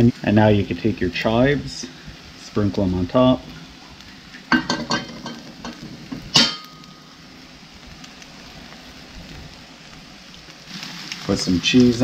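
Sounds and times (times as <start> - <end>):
eggs sizzling in a frying pan: 0.0 - 12.0
utensil clattering: 4.5 - 6.9
utensil clinking against pan: 4.5 - 6.9.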